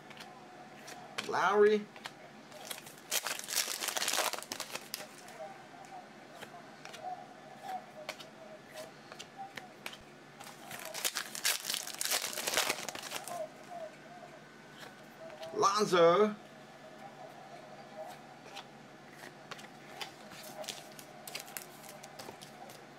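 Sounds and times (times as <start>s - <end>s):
trading cards rustling: 2.0s - 5.4s, 6.9s - 13.5s, 18.5s - 22.9s.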